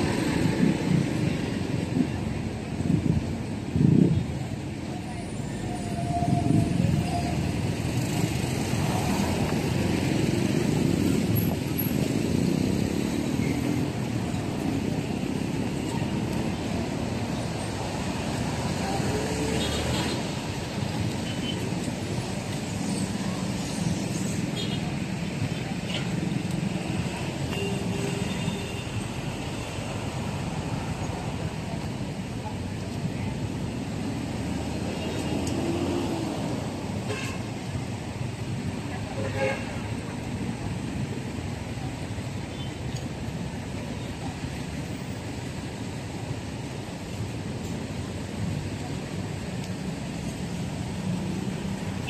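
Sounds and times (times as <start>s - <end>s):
hum of engines and tyres: 0.0s - 52.0s
motorcycles passing: 7.5s - 29.2s.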